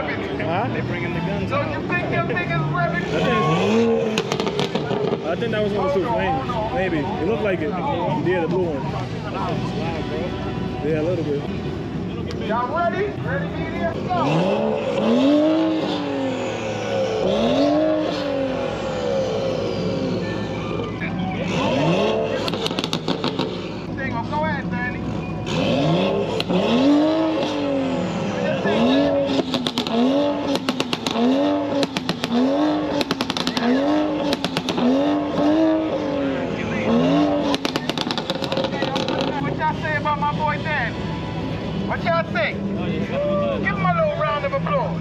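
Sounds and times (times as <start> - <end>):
car engine revving: 0.0 - 45.0
exhaust pops: 4.1 - 5.3, 22.3 - 23.7, 29.3 - 36.0, 37.3 - 39.5.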